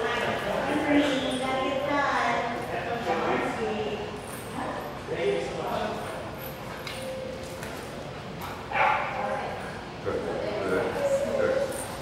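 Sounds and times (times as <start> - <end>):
dog barking: 8.7 - 9.2.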